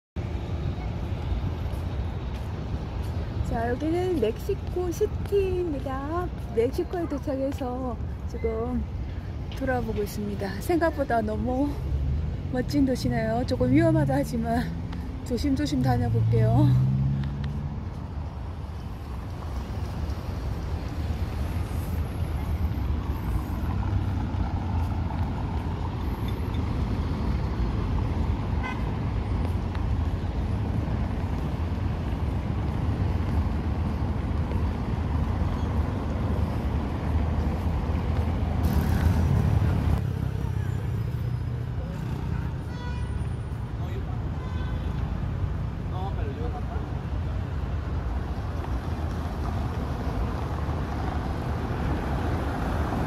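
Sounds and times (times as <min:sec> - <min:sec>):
city street traffic: 0:00.2 - 0:53.0
car horn: 0:28.6 - 0:29.0, 0:42.6 - 0:43.2.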